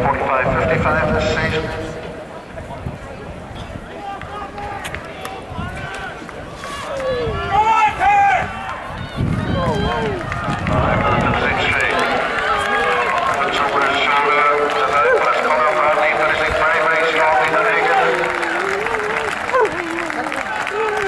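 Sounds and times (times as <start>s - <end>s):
spectators shouting and cheering: 0.0s - 21.0s
loud shout: 3.9s - 21.0s.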